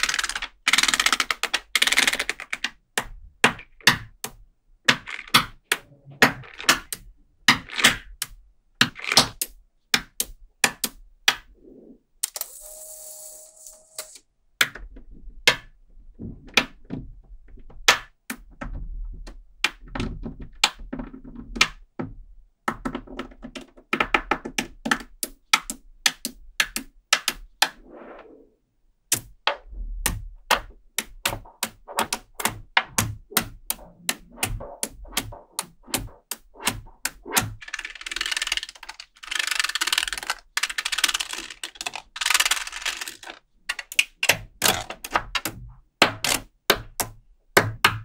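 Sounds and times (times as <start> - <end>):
magnet balls clicking together: 0.0 - 4.1, 4.8 - 11.4, 29.1 - 45.5.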